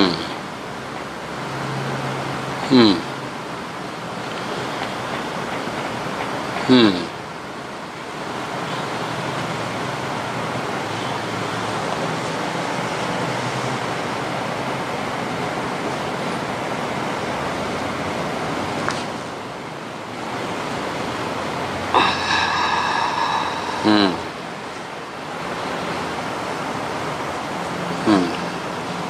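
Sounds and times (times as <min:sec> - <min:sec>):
person murmuring: 0:00.0 - 0:00.4, 0:02.6 - 0:03.2, 0:06.6 - 0:07.2, 0:22.0 - 0:24.6, 0:28.0 - 0:28.5
steady rushing noise: 0:07.4 - 0:27.9.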